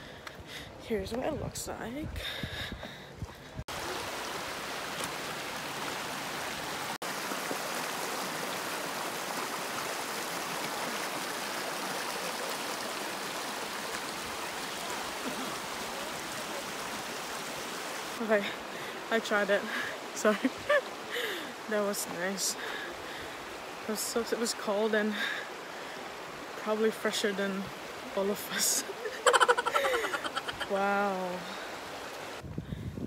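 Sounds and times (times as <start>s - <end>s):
creek rushing over stones: 3.2s - 32.5s.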